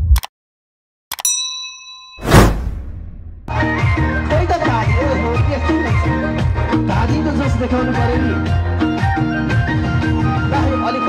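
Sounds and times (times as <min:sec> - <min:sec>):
bright bell ding: 0:01.2 - 0:02.5.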